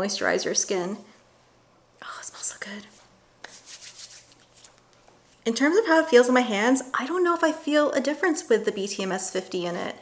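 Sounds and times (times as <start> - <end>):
hands rubbing together: 2.9 - 5.4.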